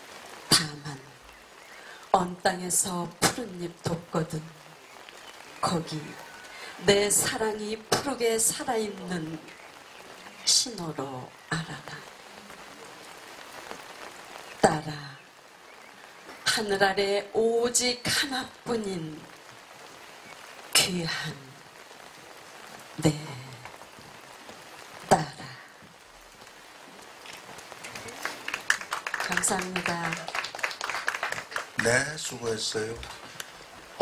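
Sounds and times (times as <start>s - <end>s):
faint background hiss: 0.0s - 34.0s
woman speaking into a microphone: 2.2s - 4.5s, 5.6s - 9.5s, 10.4s - 12.1s, 14.6s - 15.2s, 16.5s - 19.2s, 20.8s - 21.6s, 23.0s - 23.6s, 29.2s - 30.3s
audience clapping: 27.5s - 33.6s.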